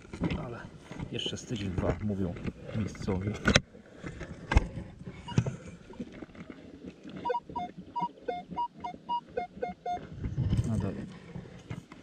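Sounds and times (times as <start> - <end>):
metal detector beeping: 7.2 - 10.0.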